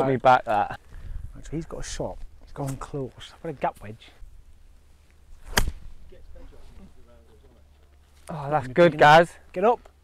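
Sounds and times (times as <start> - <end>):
golf club striking ball: 5.4 - 6.0.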